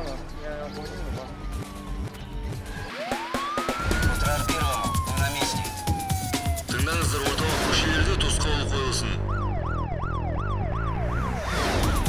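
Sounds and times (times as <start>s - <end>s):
music with a beat: 1.0s - 7.5s
siren sound effect: 1.1s - 12.0s.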